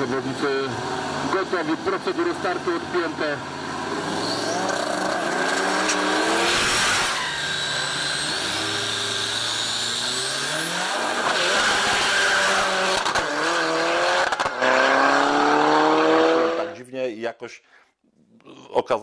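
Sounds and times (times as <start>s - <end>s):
drag race cars accelerating: 0.0s - 16.8s.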